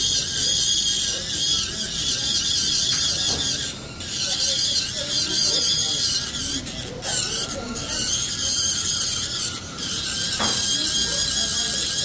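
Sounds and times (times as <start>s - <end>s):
dental drill high-pitched whine: 0.0s - 12.0s.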